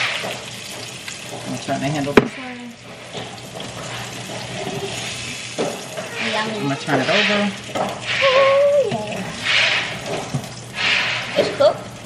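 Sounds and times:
fish sizzling in a frying pan: 0.0 - 11.9.

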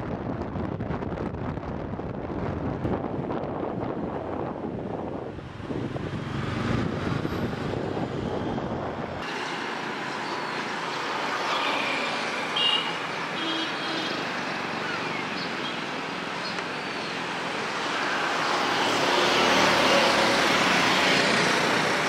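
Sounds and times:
car road and wind noise: 0.0 - 22.0
street traffic: 0.0 - 22.0.

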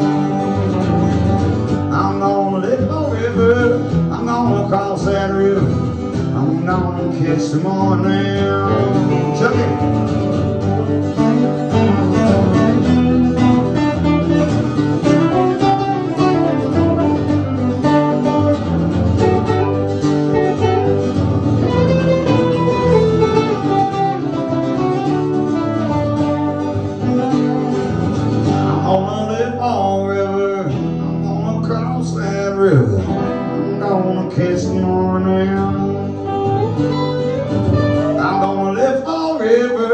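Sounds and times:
acoustic guitars strumming chords: 0.0 - 39.9
picked guitar lead melody: 0.0 - 39.9.

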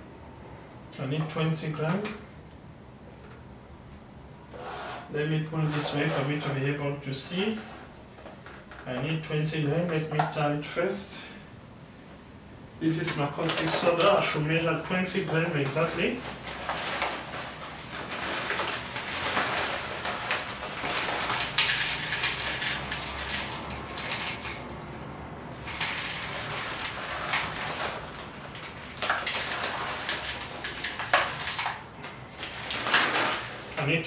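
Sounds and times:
plastic bag crinkling: 15.7 - 24.8, 25.5 - 33.8
solid grains falling into cup: 18.2 - 24.4.

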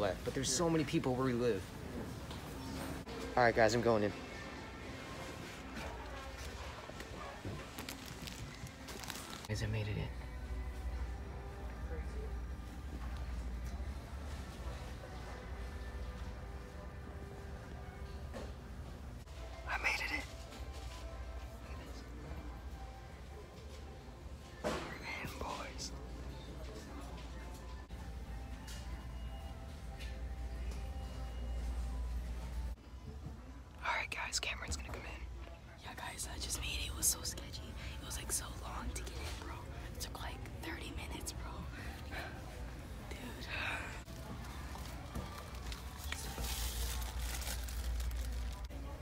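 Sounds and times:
plastic wrapping crinkling: 7.6 - 9.5, 44.8 - 48.7
person whispering: 19.6 - 20.4, 24.8 - 26.0, 33.8 - 35.3, 35.9 - 44.1.

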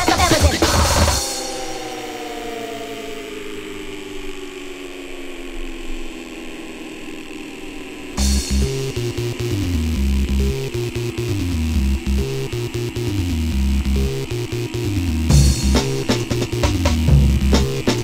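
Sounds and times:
heavy bass line and beat: 0.0 - 1.5, 8.2 - 18.0
synthesizer chords sliding down: 0.3 - 18.0.

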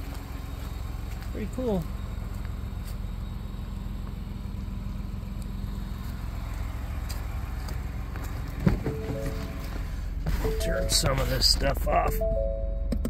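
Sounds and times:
truck engine idling: 0.0 - 12.9.

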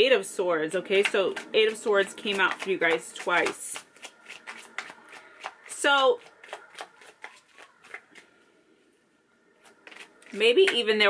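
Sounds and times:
cards shuffled by hand: 1.0 - 8.3, 9.6 - 10.4.

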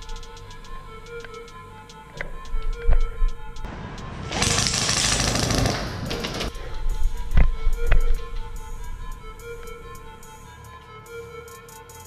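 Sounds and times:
background music: 0.0 - 12.0
rapid airsoft gunfire: 4.3 - 6.5.

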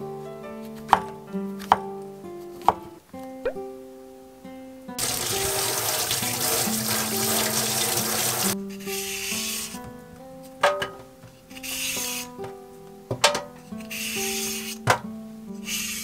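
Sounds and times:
tap water splashing into sink: 5.0 - 8.6.

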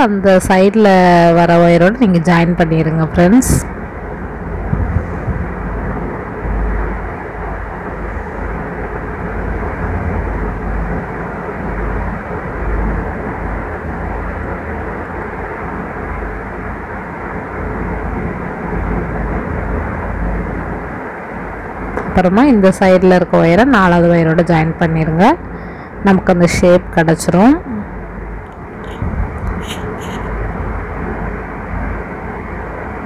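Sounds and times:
low rumbling background noise: 0.0 - 33.0.

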